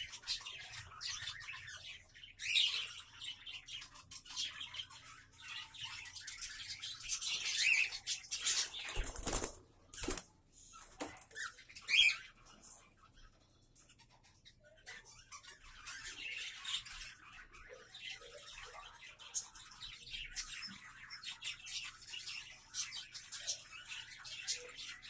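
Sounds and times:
cockatiels chirping: 0.0 - 10.2, 11.0 - 25.0.

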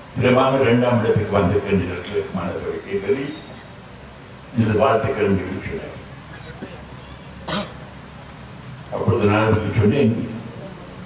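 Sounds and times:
man clearing his throat: 6.3 - 7.8.

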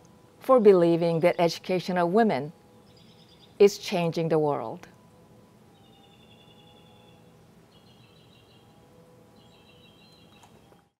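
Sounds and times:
faint outdoor background: 0.0 - 11.0
bird trilling: 5.7 - 8.7, 9.4 - 10.8.

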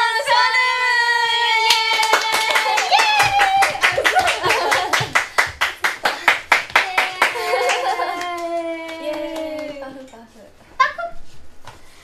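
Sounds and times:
hands clapping quickly: 1.7 - 10.1
excited laughing voices: 2.6 - 5.2, 7.1 - 9.4.

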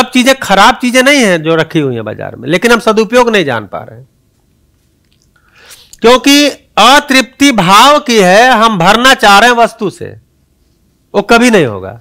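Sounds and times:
man speaking: 0.0 - 4.1, 6.0 - 10.2, 11.1 - 12.0.

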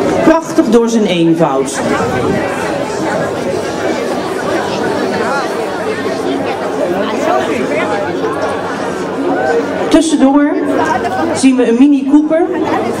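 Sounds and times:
crowd chattering: 0.0 - 13.0.

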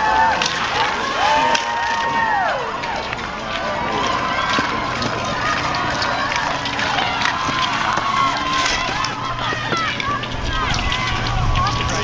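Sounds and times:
crowd noise: 0.0 - 12.0
long drawn-out yells: 0.0 - 12.0
spectators shouting and cheering: 0.0 - 12.0.

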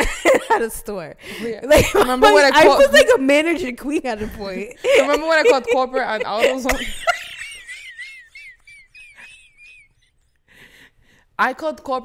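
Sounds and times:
woman laughing wheezily: 4.3 - 10.3.

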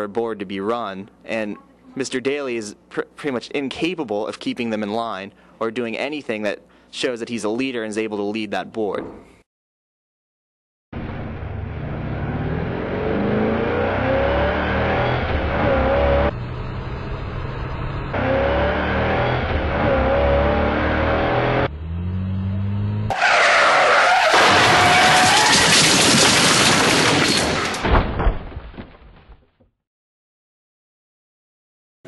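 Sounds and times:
car engine accelerating: 11.0 - 23.4
tyre screech of skidding car: 23.1 - 25.7.

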